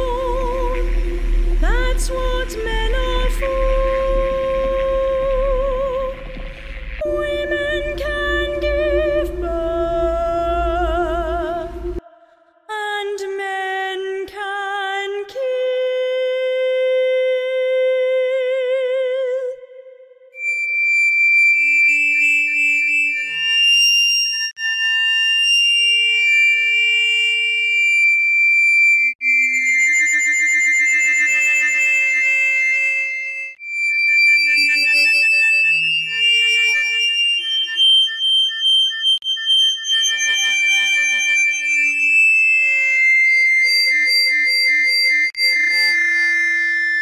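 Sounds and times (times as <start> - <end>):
faint low drone: 0.0 - 12.1
high gliding held tones: 0.0 - 12.6.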